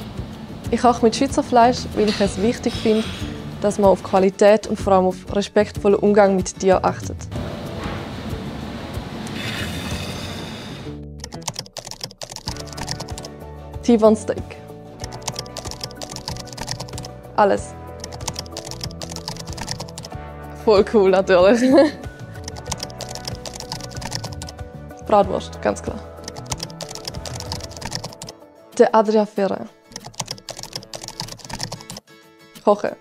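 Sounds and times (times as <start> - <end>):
background music: 0.0 - 33.0
keyboard typing clicks: 11.2 - 13.3, 15.0 - 17.1, 18.0 - 20.1, 22.4 - 24.6, 26.2 - 28.4, 29.9 - 32.0.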